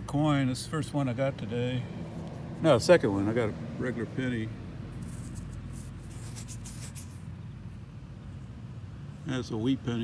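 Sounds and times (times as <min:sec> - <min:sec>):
fingers rustling a coin: 0:05.0 - 0:07.3.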